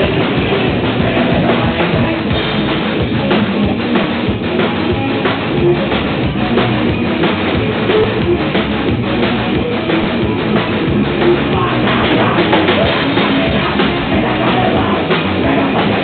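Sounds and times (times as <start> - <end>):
bass guitar: 0.0 - 16.0
drum kit: 0.0 - 16.0
electric guitar: 0.0 - 16.0.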